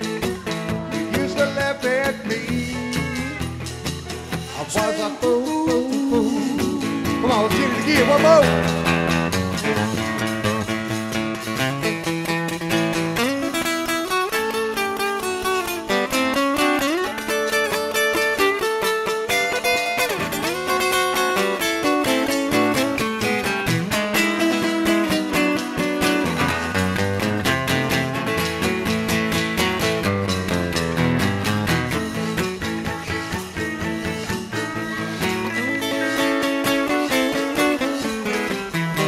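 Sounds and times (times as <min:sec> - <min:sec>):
pedal steel guitar: 0:00.0 - 0:39.0
strummed acoustic guitar: 0:00.0 - 0:39.0.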